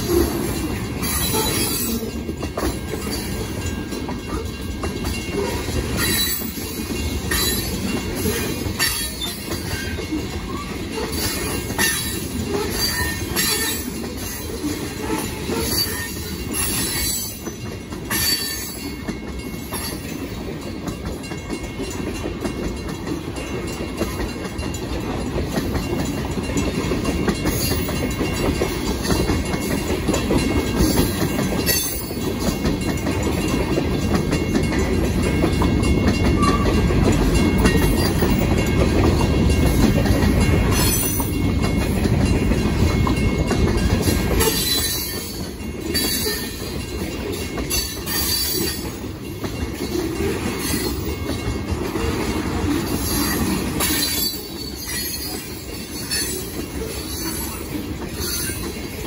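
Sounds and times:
freight train rolling past: 0.0s - 59.0s.

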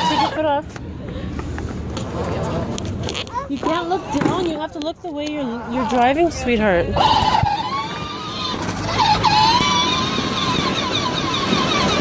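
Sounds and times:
toy quad motor whining: 0.0s - 0.6s, 5.3s - 12.0s
tyres rumbling on asphalt: 0.0s - 12.0s.

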